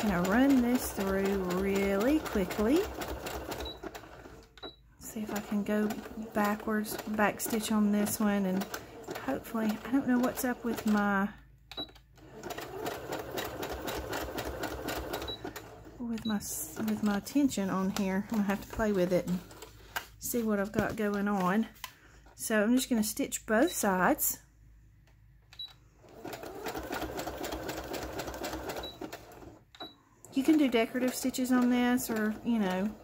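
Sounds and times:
sewing machine running: 0.0s - 11.3s, 12.2s - 19.8s, 26.0s - 29.6s, 30.2s - 33.0s.

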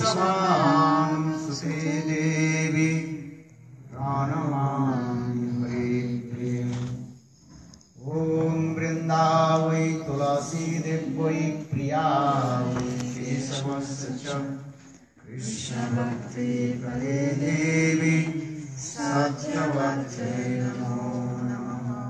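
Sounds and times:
man chanting into microphone: 0.0s - 7.1s, 8.0s - 22.0s.

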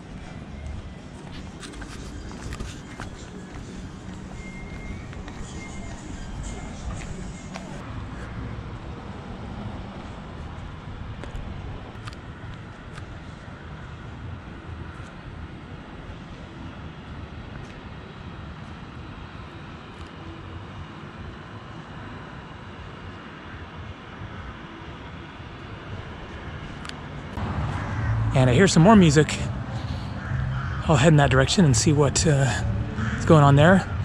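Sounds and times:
steady low city rumble: 0.0s - 34.0s.

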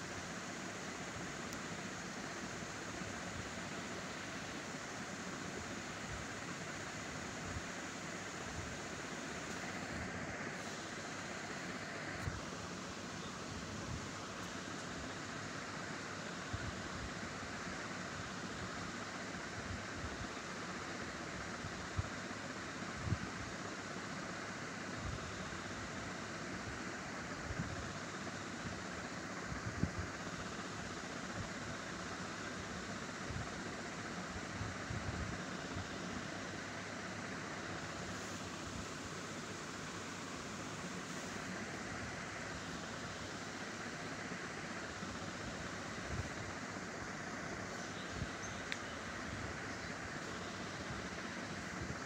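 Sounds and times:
steady background hiss: 0.0s - 52.0s.

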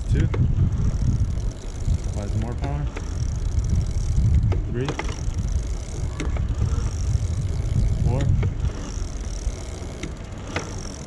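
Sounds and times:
low rumble: 0.0s - 9.7s
electric bike motor whine: 0.0s - 11.0s.

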